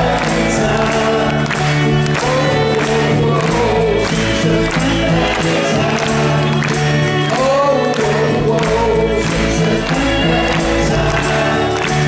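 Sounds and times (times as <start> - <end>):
live rock band playing: 0.0 - 12.0
percussion hits: 0.0 - 12.0
person singing: 0.0 - 12.0.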